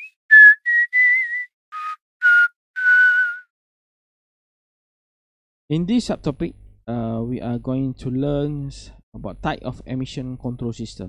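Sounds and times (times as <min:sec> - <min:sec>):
person whistling a tune: 0:00.0 - 0:03.5.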